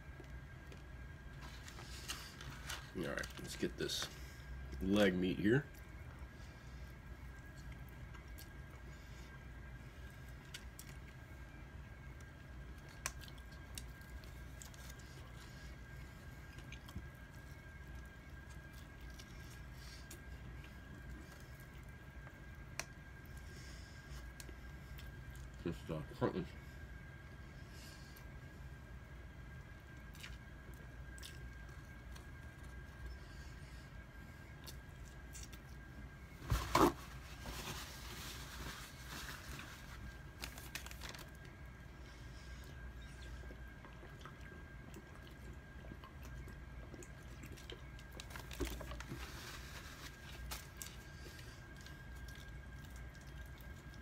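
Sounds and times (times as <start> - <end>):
man chewing food: 0.0 - 4.8, 5.7 - 25.6, 26.8 - 54.0
low room hum: 0.0 - 54.0
rustling: 36.4 - 41.3.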